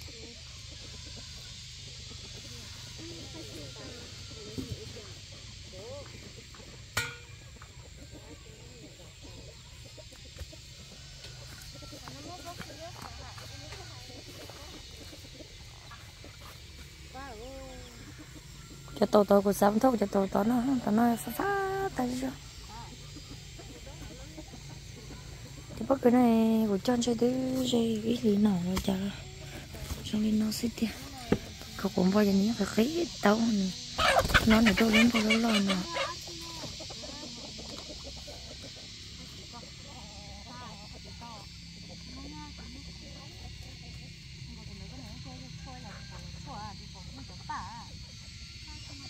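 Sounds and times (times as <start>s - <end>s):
chickens clucking: 0.0s - 49.0s
faint calls: 0.0s - 49.0s
drawn-out call: 33.8s - 38.9s.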